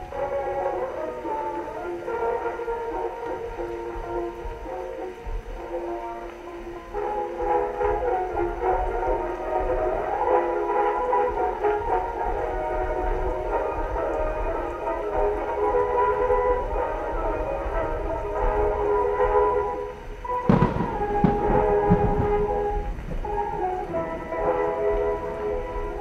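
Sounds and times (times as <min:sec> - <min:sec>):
distant artillery rumble: 0:00.0 - 0:26.0
phonograph record music: 0:00.0 - 0:26.0.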